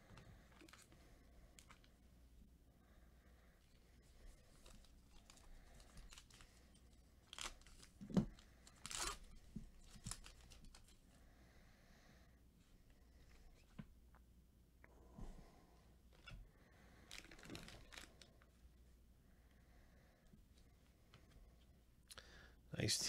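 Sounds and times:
foil wrapper ripping and crinkling: 7.3s - 10.9s, 17.1s - 18.3s.

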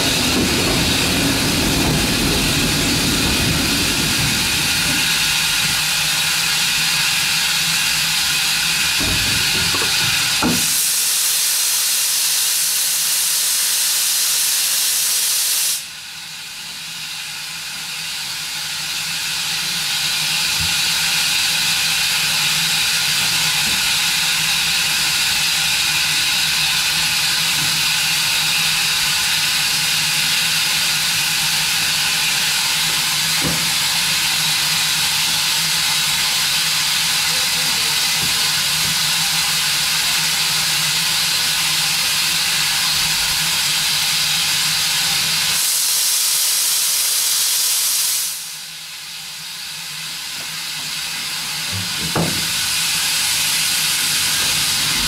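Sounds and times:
steam hissing from safety valve: 0.0s - 55.0s.

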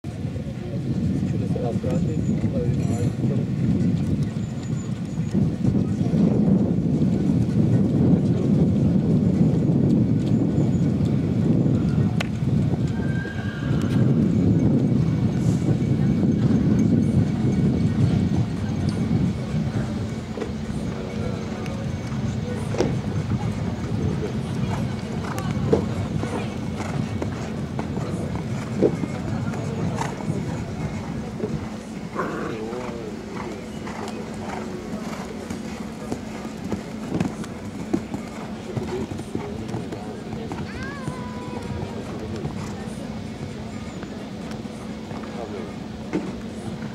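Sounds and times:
hoofbeats on sand: 13.9s - 44.2s
steady hum: 17.4s - 46.9s.

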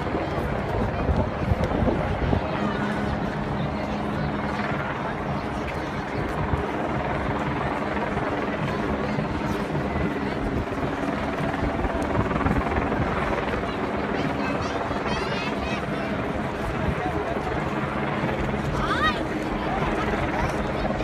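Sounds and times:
continuous low drone: 0.0s - 21.0s
crowd murmur: 0.0s - 21.0s.

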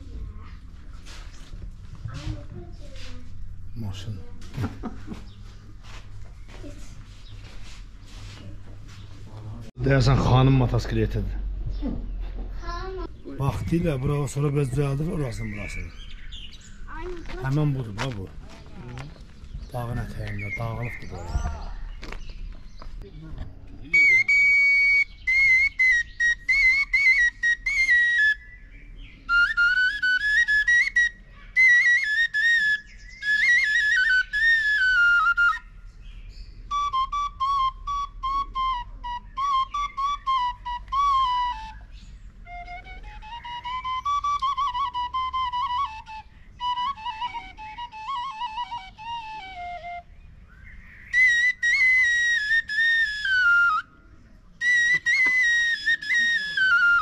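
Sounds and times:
wooden pipe folk melody: 23.9s - 35.8s, 36.6s - 50.2s, 51.1s - 53.9s, 54.6s - 57.0s.

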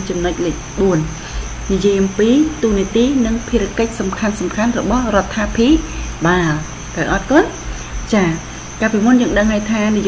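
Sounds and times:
person speaking: 0.1s - 10.0s.

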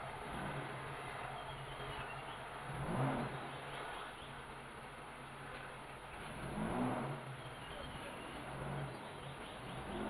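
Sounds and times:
vehicle engine running at low speed: 0.0s - 10.0s.

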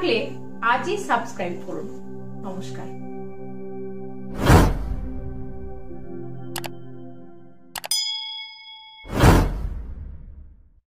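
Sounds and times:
background music: 0.0s - 10.2s
loud whoosh: 4.3s - 5.4s, 9.1s - 10.7s
bright ding: 7.8s - 9.5s.

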